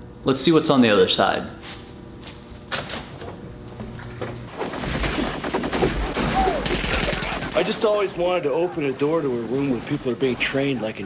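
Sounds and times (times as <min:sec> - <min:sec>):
rapid gunfire: 0:04.5 - 0:08.0.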